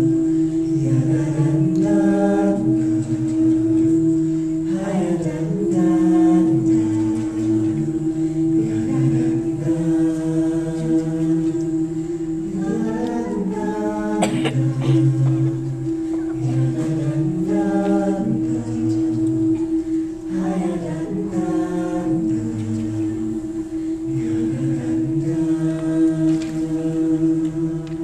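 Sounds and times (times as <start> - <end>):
vocal ensemble singing a cappella: 0.0 - 28.0.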